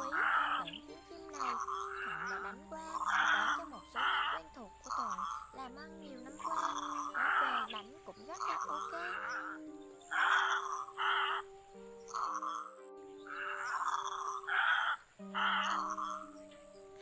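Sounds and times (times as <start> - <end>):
background music with held notes: 0.0 - 17.0
egret croaking calls: 0.0 - 17.0.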